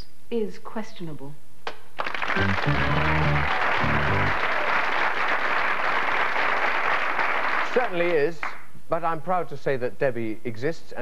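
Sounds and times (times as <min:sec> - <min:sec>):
audience applauding: 0:02.0 - 0:08.6
music: 0:02.4 - 0:04.5.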